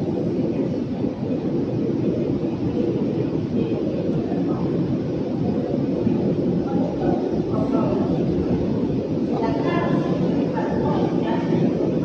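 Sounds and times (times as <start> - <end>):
train rumbling slowly: 0.0 - 12.0.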